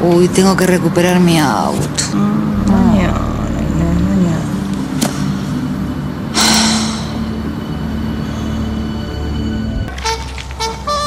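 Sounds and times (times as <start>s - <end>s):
steady low hum: 2.0s - 9.8s
held musical note: 6.3s - 10.2s
woman sighing: 6.4s - 7.3s.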